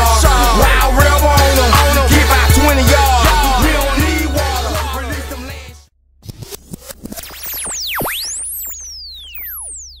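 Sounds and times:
sweeping electronic tones: 7.0s - 10.0s.

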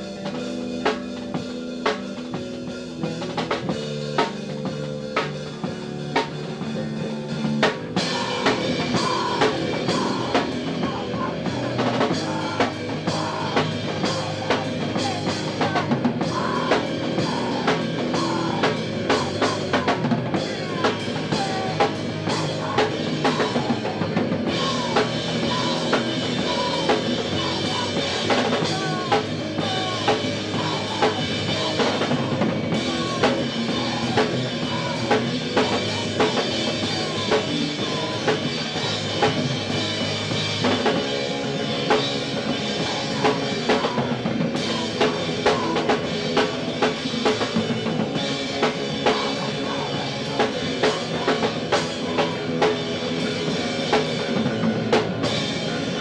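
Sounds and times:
bass guitar: 0.0s - 56.0s
drum kit: 0.0s - 56.0s
electric guitar: 0.0s - 56.0s.

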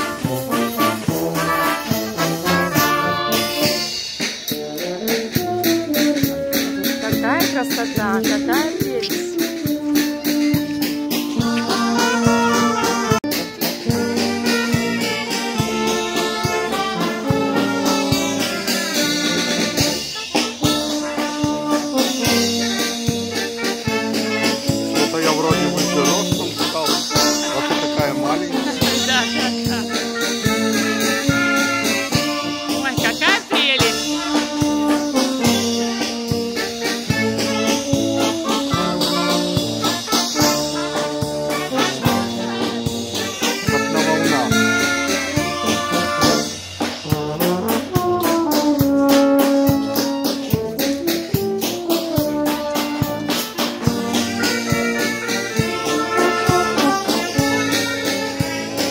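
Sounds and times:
brass band playing dance tune: 0.0s - 58.9s.

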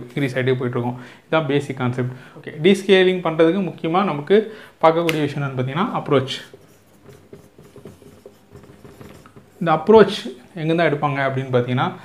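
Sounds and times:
marker scratching on whiteboard: 5.1s - 10.6s.

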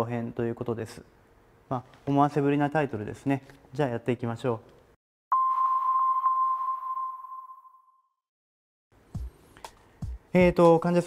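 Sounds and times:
electronic ping: 5.3s - 8.1s.

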